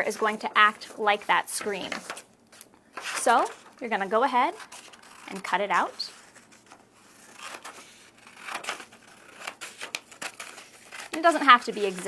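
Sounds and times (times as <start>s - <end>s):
paper rustling: 0.0s - 12.0s
scissors snipping paper: 7.3s - 12.0s.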